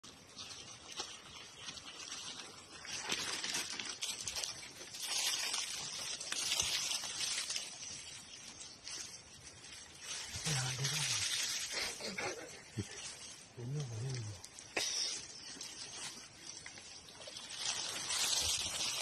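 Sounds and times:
dry leaves rustling and crunching: 0.0s - 19.0s.

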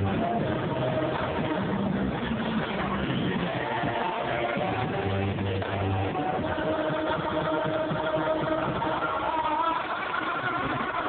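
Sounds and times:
drum kit played busily: 0.0s - 9.4s.

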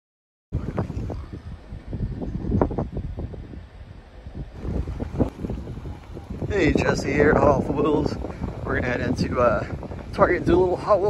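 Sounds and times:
wind buffeting microphone: 0.5s - 11.0s.

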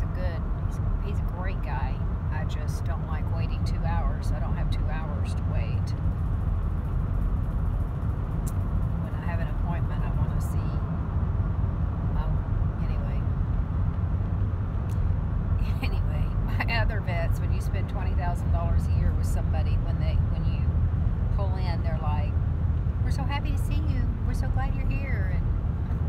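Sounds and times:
car road and engine noise: 0.0s - 26.0s.

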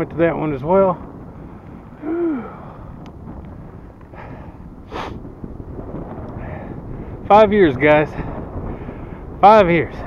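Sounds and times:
wind noise on microphone: 0.0s - 10.0s
man hooting: 2.0s - 2.7s.

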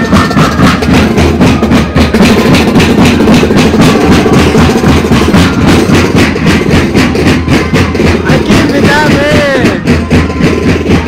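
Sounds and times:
bass and snare drums beat: 0.0s - 11.0s
flutes playing melody: 0.0s - 11.0s.

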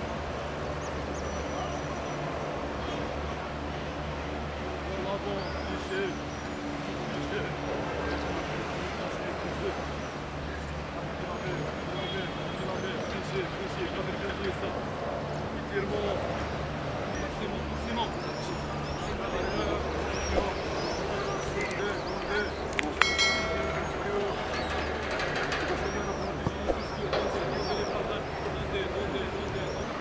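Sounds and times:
low background hum: 0.0s - 30.0s
men's voices calling and chatting: 0.0s - 30.0s
knock with metallic ringing: 23.0s - 27.8s.

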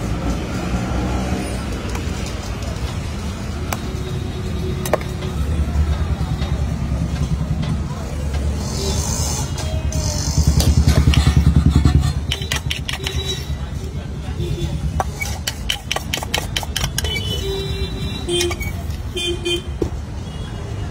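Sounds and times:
vehicle engine throbbing rumble: 1.6s - 16.0s.

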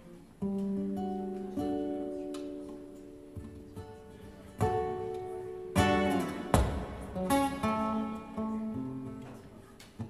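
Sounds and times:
acoustic guitars playing: 0.0s - 10.0s.

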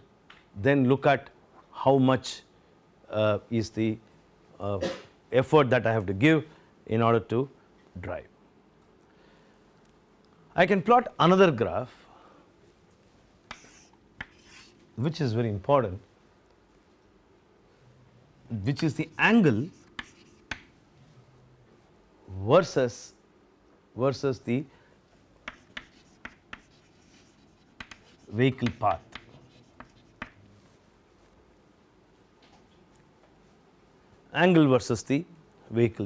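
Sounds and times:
chalk scraping on blackboard: 13.5s - 14.8s, 18.8s - 20.7s, 25.5s - 30.4s
chalk tapping on board: 13.5s - 14.8s, 19.0s - 20.7s, 25.4s - 30.4s.

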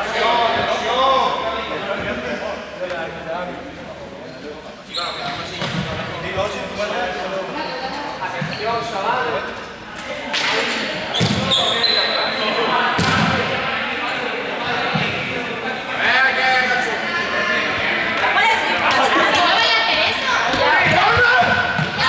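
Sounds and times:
players' voices echoing: 0.0s - 22.0s
balls bouncing on court floor: 5.2s - 6.0s, 11.2s - 11.5s, 13.0s - 13.5s, 20.5s - 22.0s.

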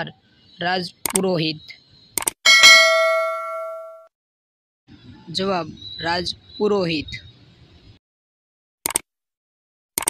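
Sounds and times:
quick clicks: 1.0s - 1.2s, 2.2s - 2.4s, 8.8s - 9.1s
notification bell ding: 2.5s - 4.1s.

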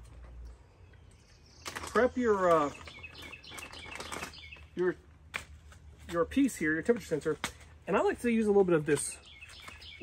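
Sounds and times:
birds chirping faintly: 0.0s - 10.0s
plastic bag crinkling: 1.7s - 4.7s.

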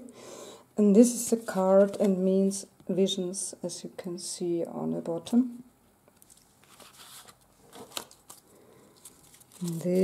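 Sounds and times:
card rustling against paper: 6.2s - 10.0s.

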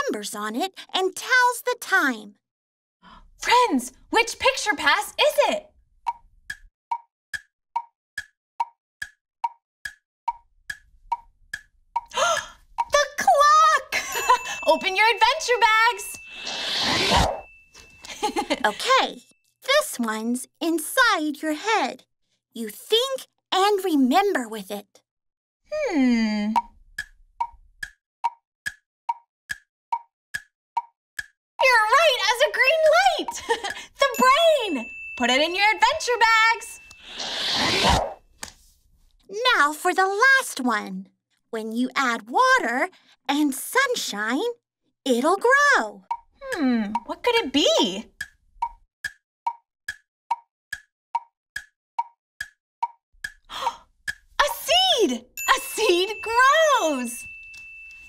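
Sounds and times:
hollow pops alternating in pitch: 6.0s - 13.2s, 26.4s - 31.4s, 32.8s - 34.0s, 46.0s - 47.3s, 48.0s - 54.4s
woodblock timer ticking: 6.1s - 13.1s, 26.6s - 31.4s, 32.1s - 34.3s, 46.0s - 47.2s, 48.0s - 54.6s.

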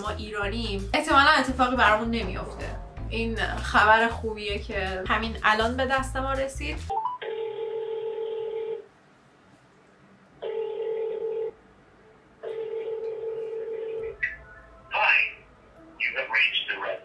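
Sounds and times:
phone ringback tone: 6.9s - 8.8s, 10.4s - 11.6s, 12.4s - 14.4s.

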